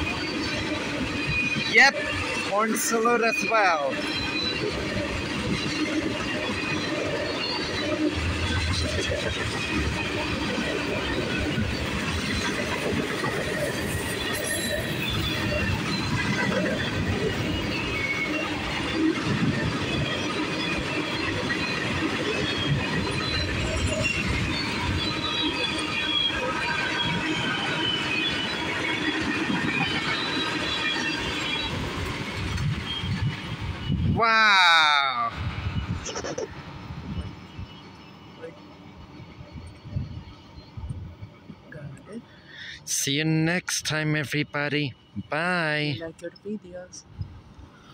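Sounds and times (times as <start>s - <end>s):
train wheels rumbling on rail: 0.0s - 47.9s
high-pitched wheel squeals: 13.5s - 41.2s.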